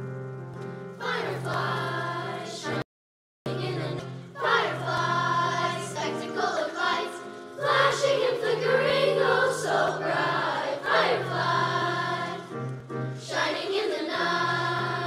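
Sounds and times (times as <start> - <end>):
children's choir singing: 1.0 - 2.8, 3.5 - 15.0.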